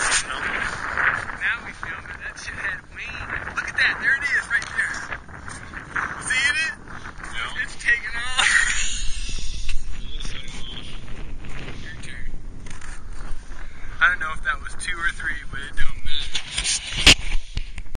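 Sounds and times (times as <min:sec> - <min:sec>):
wind rumble on microphone: 0:00.0 - 0:18.0
men laughing: 0:08.2 - 0:10.1.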